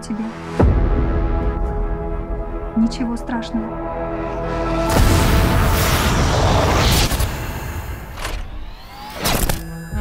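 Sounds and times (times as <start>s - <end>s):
music: 0.0s - 10.0s
sharp booming hits: 4.8s - 7.9s.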